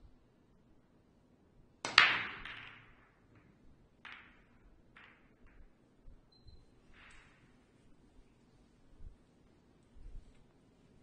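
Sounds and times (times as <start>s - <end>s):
balls cracking and clattering: 1.8s - 8.4s.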